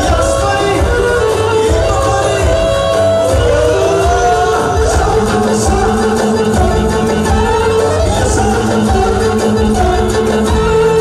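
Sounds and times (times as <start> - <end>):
loud live dance music: 0.0 - 11.0
man singing into a microphone: 0.0 - 11.0.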